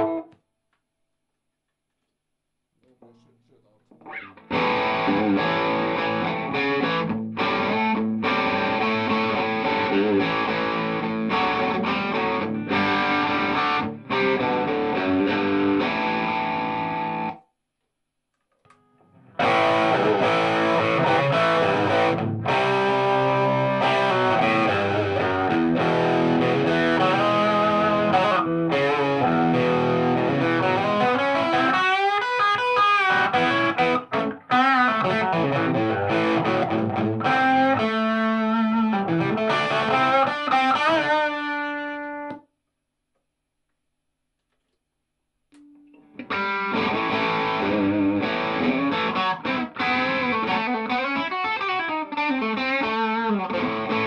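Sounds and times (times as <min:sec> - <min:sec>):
electric guitar playing: 0:00.0 - 0:00.3, 0:04.0 - 0:17.4, 0:18.7 - 0:42.4, 0:45.6 - 0:54.0.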